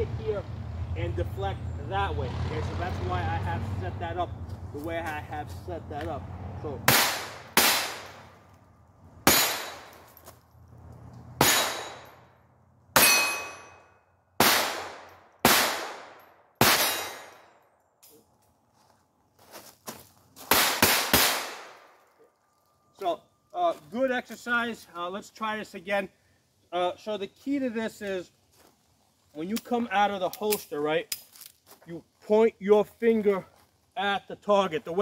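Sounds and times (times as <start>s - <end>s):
pistol shots: 6.9s - 8.2s, 9.3s - 10.0s, 11.4s - 12.1s, 14.4s - 17.4s, 20.5s - 21.9s
steel target ringing: 9.3s - 9.9s, 11.4s - 12.2s, 13.0s - 13.9s, 16.7s - 17.4s.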